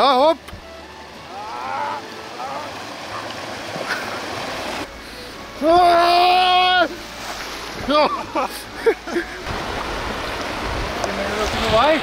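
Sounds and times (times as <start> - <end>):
fast-flowing stream rushing: 0.0 - 12.0.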